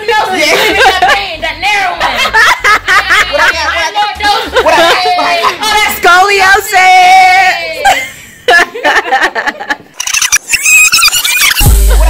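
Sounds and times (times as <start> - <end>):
tape rewind squeaky chatter: 10.0 - 11.7.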